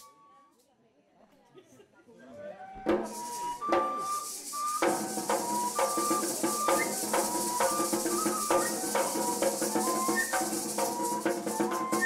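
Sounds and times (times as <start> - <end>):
cane flute melody: 0.0 - 0.2, 2.5 - 12.0
drum beating: 2.8 - 12.0
maraca shaking: 2.8 - 12.0.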